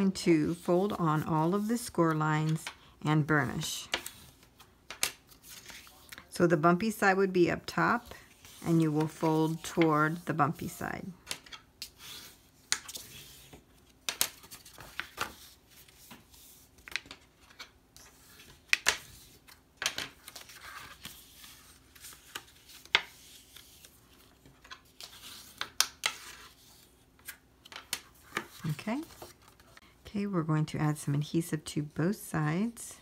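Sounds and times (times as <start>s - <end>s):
soft paper rustling: 0.0s - 30.0s.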